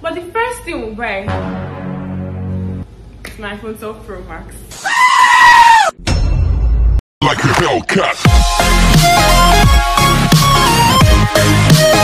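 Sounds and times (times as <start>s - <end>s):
deep bass-heavy sound: 1.3s - 3.0s
bleat-like cry: 4.8s - 5.9s.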